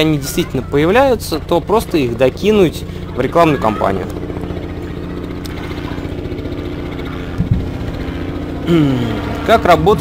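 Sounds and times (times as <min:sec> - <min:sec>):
low mechanical hum: 0:00.0 - 0:10.0
low thump: 0:07.4 - 0:07.7.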